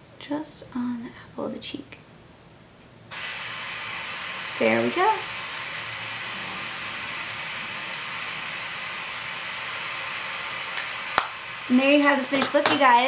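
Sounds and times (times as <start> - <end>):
room noise hiss: 0.0 - 13.0.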